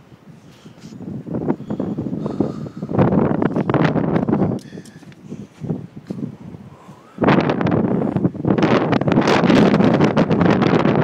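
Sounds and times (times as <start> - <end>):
microphone rustle and buffeting: 0.3 - 11.0.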